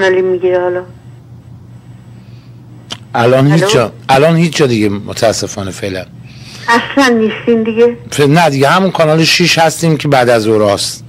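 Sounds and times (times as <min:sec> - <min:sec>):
low hum and line hiss: 0:00.0 - 0:11.0.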